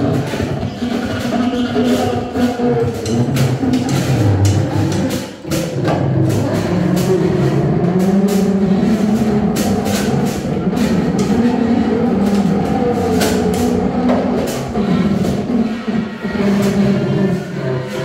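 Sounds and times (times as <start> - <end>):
drum and percussion clicks: 0.0 - 17.1
synthesizer drones: 0.0 - 18.0.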